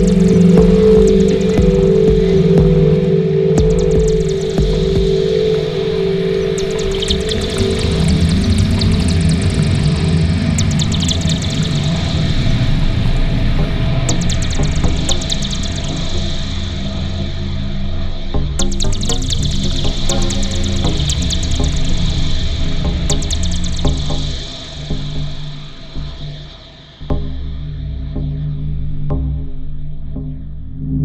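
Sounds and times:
rapid high clicking: 0:00.0 - 0:02.9, 0:03.6 - 0:05.3, 0:10.6 - 0:12.6, 0:14.1 - 0:16.5, 0:18.6 - 0:24.8
low rumble: 0:00.0 - 0:24.6
ambient electronic drone tones: 0:00.0 - 0:31.0.

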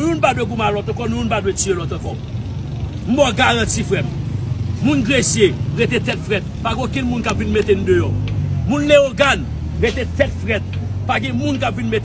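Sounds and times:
man speaking: 0:00.0 - 0:02.2, 0:03.0 - 0:12.0
street traffic rumble: 0:00.0 - 0:12.0.

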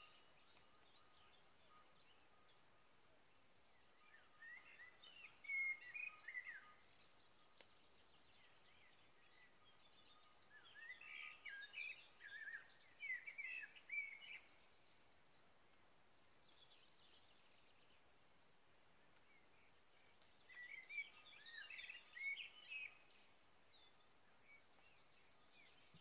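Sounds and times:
insect chirping: 0:00.0 - 0:26.0.

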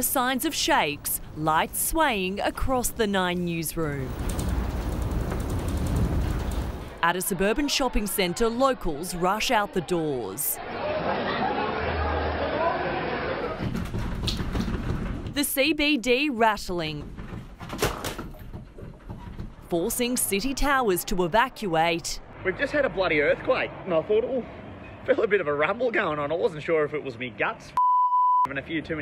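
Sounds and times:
low rumbling: 0:03.8 - 0:07.0
light rattles: 0:04.1 - 0:07.0.

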